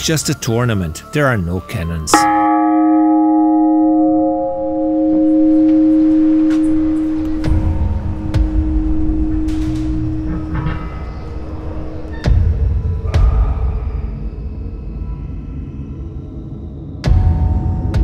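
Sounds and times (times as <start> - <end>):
large bell ringing: 2.1 - 12.2
low rumble: 3.2 - 18.0.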